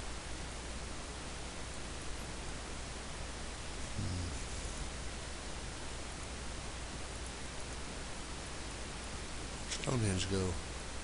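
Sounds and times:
low electrical hum: 0.0s - 11.0s
steady hiss: 0.0s - 11.0s.

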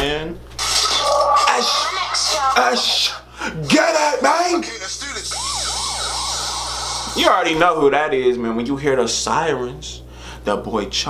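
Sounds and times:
yelping siren: 4.8s - 7.6s.

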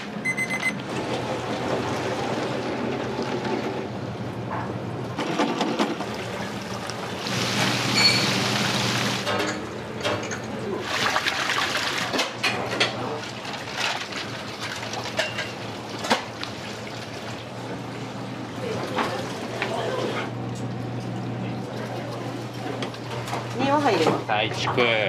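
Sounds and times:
electronic timer beep: 0.2s - 0.8s
water splashing and running: 5.8s - 9.3s, 10.8s - 12.4s, 13.2s - 17.9s.

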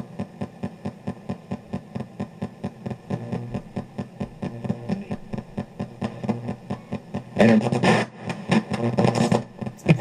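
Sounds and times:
regular clicks: 0.0s - 9.9s
chopped radio audio fragments: 0.0s - 10.0s.

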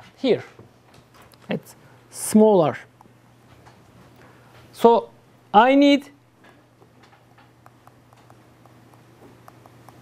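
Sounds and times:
low steady hum: 0.7s - 10.0s
stylus tapping on tablet screen: 7.2s - 10.0s.

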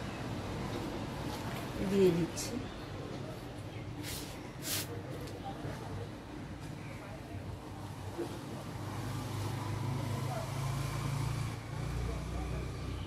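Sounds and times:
passing vehicle engine rumble: 8.1s - 13.0s.

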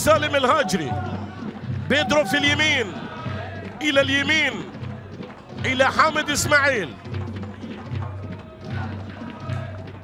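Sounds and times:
stadium crowd ambience: 0.0s - 10.0s
steady drumbeat: 0.0s - 10.0s.

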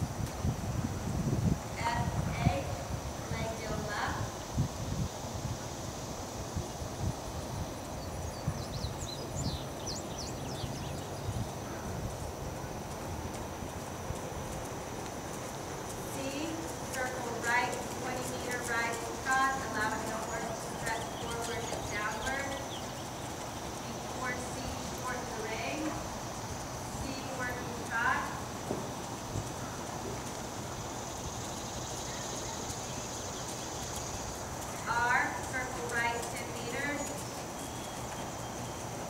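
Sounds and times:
horse hoofbeats trotting on dirt: 6.5s - 39.0s
person talking: 16.1s - 22.6s.

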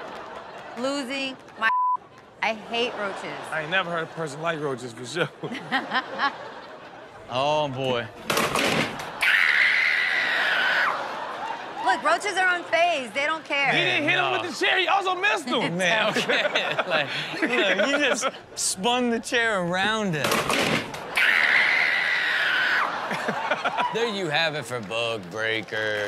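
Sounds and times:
person screaming: 9.2s - 11.0s, 21.2s - 22.9s.

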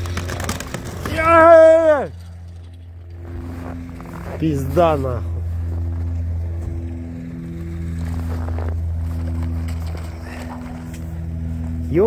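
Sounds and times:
vehicle engine idling: 0.0s - 12.0s.

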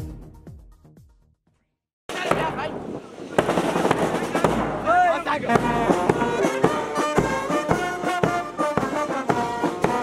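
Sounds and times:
voices: 2.1s - 8.6s.

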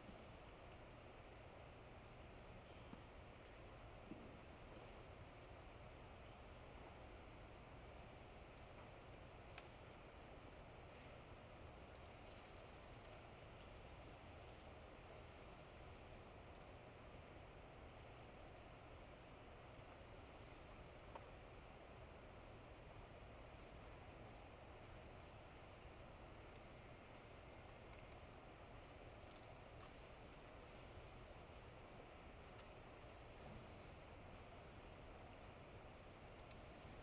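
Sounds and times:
small clicks: 8.5s - 10.3s, 11.6s - 14.8s, 17.9s - 18.5s, 26.4s - 30.5s, 32.3s - 33.5s, 36.1s - 37.0s.

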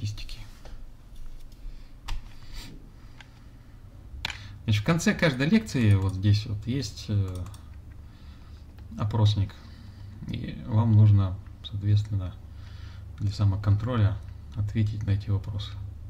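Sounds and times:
low steady hum: 0.0s - 16.0s
computer keyboard clicking: 5.8s - 6.2s, 7.3s - 7.8s.

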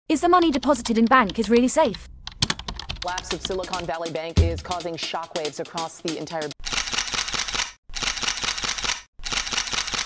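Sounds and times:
rapid shutter-like clicks: 6.1s - 10.0s.

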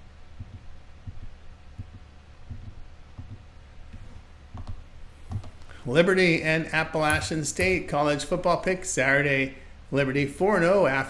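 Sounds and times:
soft low thumps: 0.0s - 5.6s
low steady hum: 0.0s - 11.0s.

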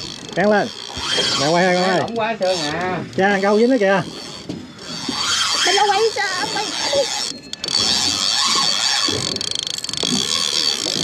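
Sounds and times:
fishing reel drag buzzing: 0.0s - 11.0s.

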